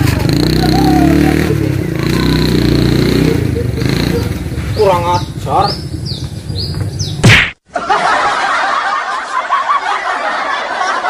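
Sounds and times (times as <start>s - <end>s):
low engine rumble: 0.0s - 7.2s
birds chirping: 0.6s - 7.3s
loud sharp slap: 7.2s - 7.6s.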